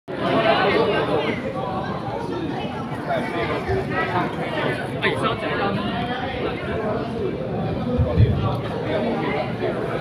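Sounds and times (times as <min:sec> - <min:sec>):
people chattering: 0:00.1 - 0:10.0.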